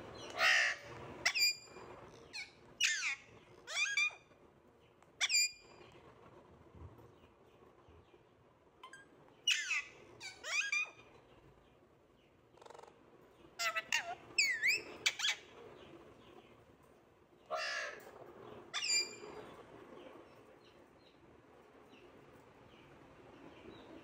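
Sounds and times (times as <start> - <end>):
parakeet harsh calls: 0.3 - 1.7, 2.3 - 4.2, 9.5 - 11.0, 13.6 - 15.5, 17.5 - 18.0.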